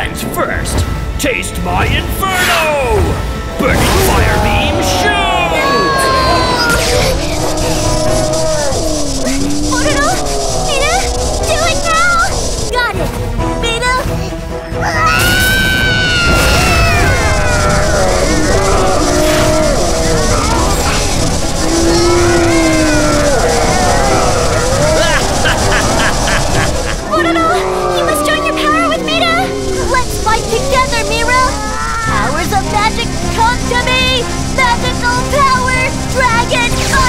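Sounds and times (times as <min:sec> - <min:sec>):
background music: 0:00.0 - 0:37.0
loud steady rumble: 0:03.2 - 0:14.6, 0:16.2 - 0:37.0
cartoon voices yelling: 0:03.7 - 0:12.9, 0:14.8 - 0:37.0
drawn-out falling cry: 0:03.9 - 0:12.9, 0:14.8 - 0:37.0.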